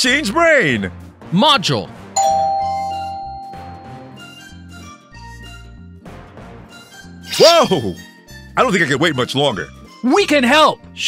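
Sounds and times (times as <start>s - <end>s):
background music: 0.0s - 11.0s
bright chime ringing: 2.2s - 4.3s.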